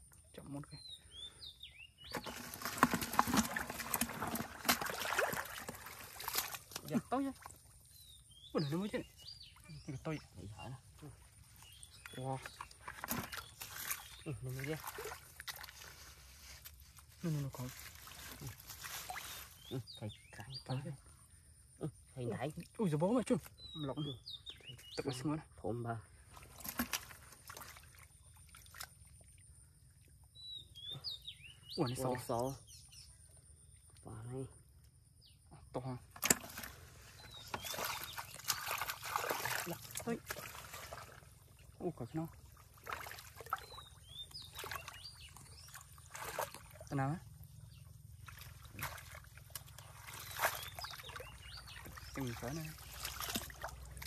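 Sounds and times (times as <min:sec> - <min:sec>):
splashing in muddy water: 0:02.0 - 0:20.8, 0:26.1 - 0:30.2, 0:35.9 - 0:54.0.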